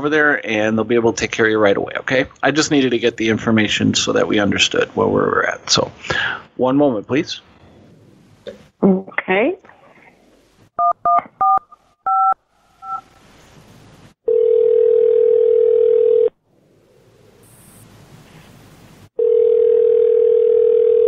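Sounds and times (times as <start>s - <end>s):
telephone ringback tone: 14.3s - 16.4s, 19.2s - 21.0s.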